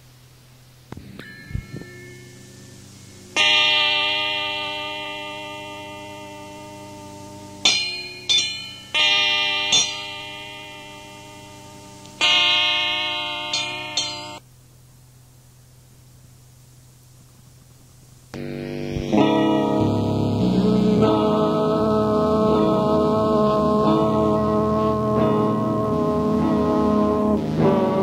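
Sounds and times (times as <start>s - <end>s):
low steady hum: 0.0s - 28.0s
struck instrument notes ringing: 1.0s - 14.4s, 18.4s - 28.0s.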